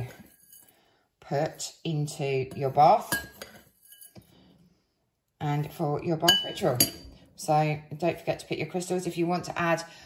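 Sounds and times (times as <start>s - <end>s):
spoon clinking on glass bowl: 3.1s - 4.2s, 6.3s - 7.1s.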